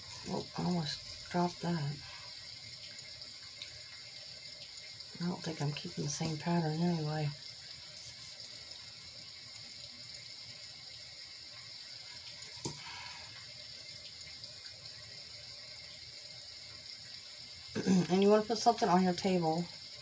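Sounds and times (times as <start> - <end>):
sound machine rain hiss: 0.0 - 20.0.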